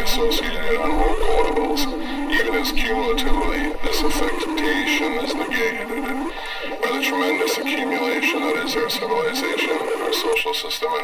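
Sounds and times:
layered degraded voices: 0.0s - 11.0s.

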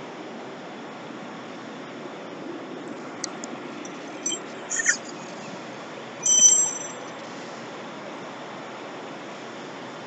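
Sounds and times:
shop background hiss: 3.9s - 7.9s
bright metallic ring: 6.2s - 7.1s.

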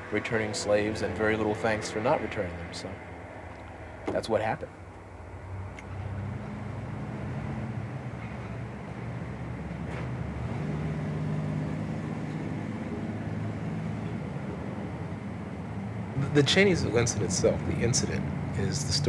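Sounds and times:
road noise: 0.0s - 19.0s.

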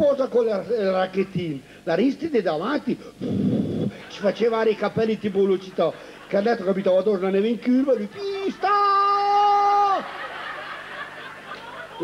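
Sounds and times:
man shouting: 8.1s - 10.1s
faint audience laughter: 9.8s - 12.0s.

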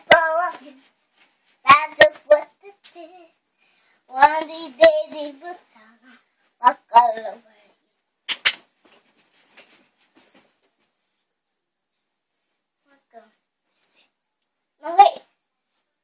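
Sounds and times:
girl singing: 0.0s - 1.0s, 1.6s - 3.4s, 4.1s - 7.6s.

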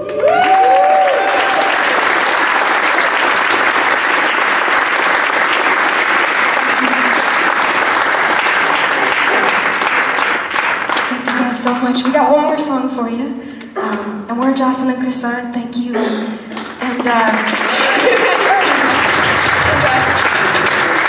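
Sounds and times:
whoops from audience: 0.0s - 2.1s
audience applauding: 0.0s - 12.2s, 16.5s - 21.0s.

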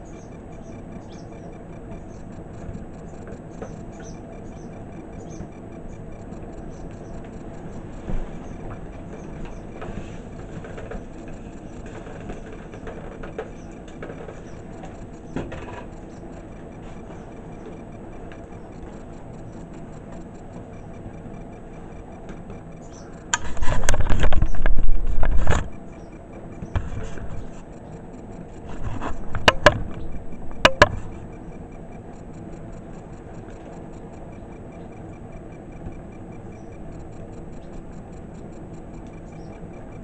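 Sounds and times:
clock ticking: 0.0s - 40.0s
steady low rumble: 0.0s - 40.0s.

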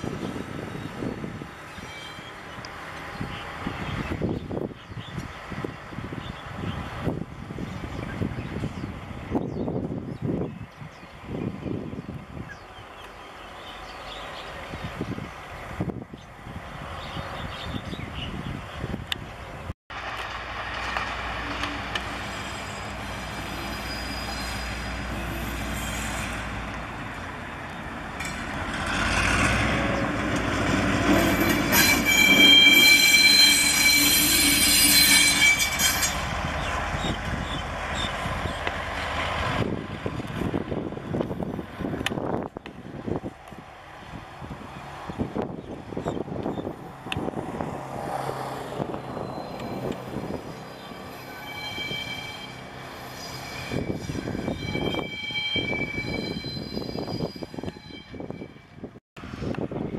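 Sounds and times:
train wheel squeal: 1.6s - 2.6s, 21.3s - 26.5s, 31.0s - 38.6s, 48.8s - 59.0s.

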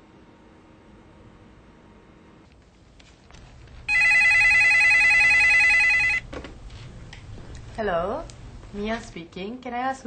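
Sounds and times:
telephone ringing: 3.9s - 6.3s.

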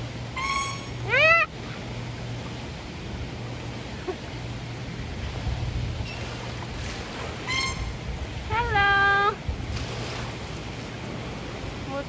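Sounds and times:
steady low hum: 0.0s - 12.0s
beluga whale squeals: 0.3s - 1.5s, 7.4s - 8.0s.

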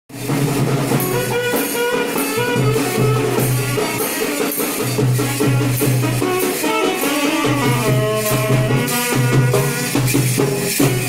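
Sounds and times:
percussion: 0.1s - 11.0s
saxophone melody: 0.9s - 11.0s.

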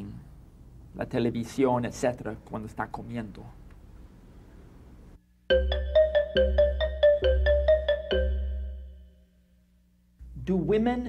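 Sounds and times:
bright repeated jingle notes: 5.5s - 9.2s.

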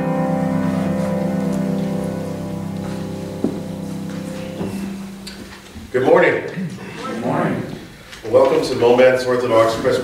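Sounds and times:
piano chord ringing: 0.0s - 6.0s.

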